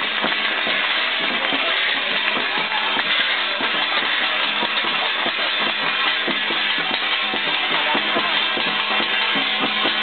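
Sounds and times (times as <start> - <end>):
drums beating: 0.0 - 10.0
hand cymbals clashing: 0.0 - 10.0.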